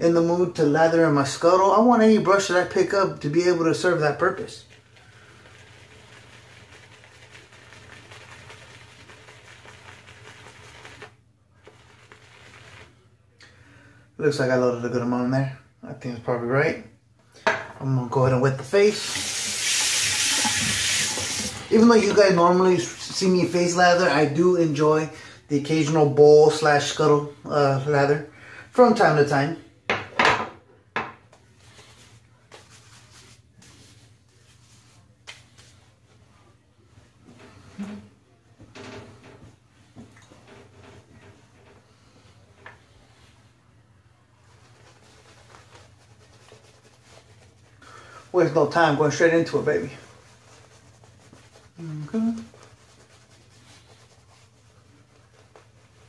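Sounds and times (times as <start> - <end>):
shaving brush scrubbing soap: 2.3 - 13.1, 18.4 - 24.6, 44.4 - 56.0.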